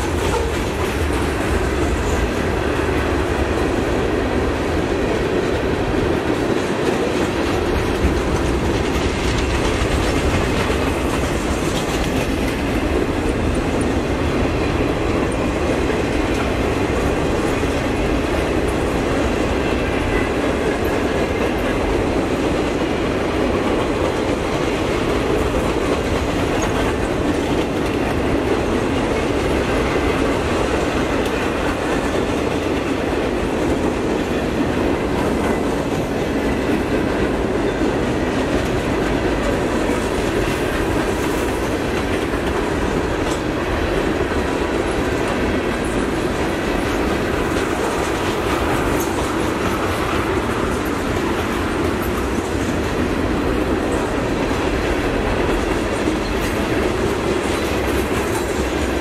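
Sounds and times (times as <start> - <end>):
freight train wheels clacking: 0.0 - 59.0.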